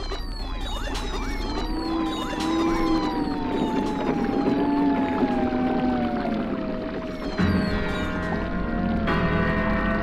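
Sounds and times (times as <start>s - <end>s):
sustained synthesizer tones: 0.0s - 10.0s.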